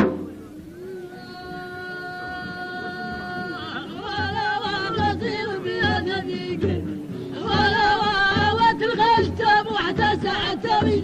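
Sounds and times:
man singing folk song: 0.3s - 11.0s.

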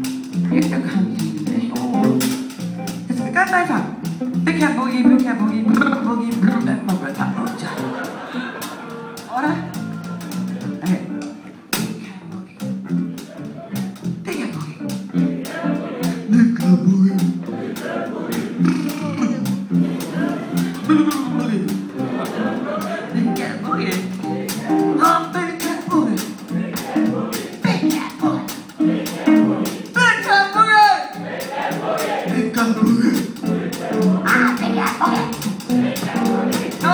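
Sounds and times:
drum strikes: 0.0s - 4.6s, 14.9s - 30.4s, 31.1s - 36.9s
blues band playing: 0.0s - 36.9s
woman singing: 0.5s - 2.3s
electric guitar: 23.3s - 25.0s.

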